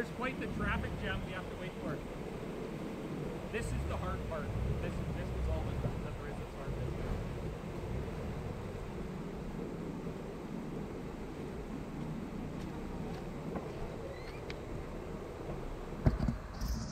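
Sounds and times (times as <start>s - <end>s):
vehicle engine idling: 0.0s - 16.9s.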